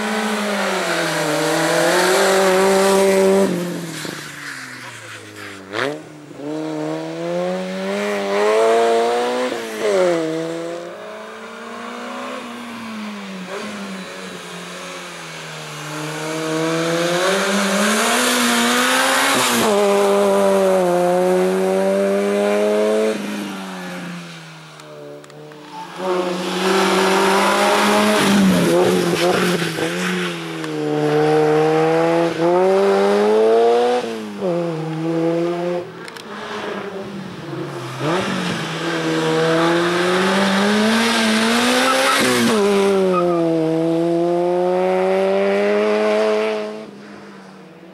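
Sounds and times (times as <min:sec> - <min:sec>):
race car engine revving: 0:25.0 - 0:46.8.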